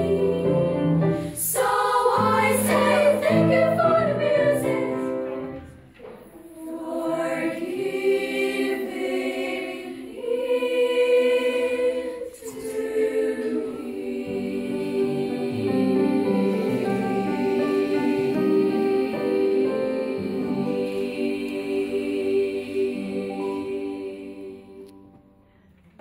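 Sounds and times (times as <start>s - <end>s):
children's choir singing: 0.0s - 25.2s.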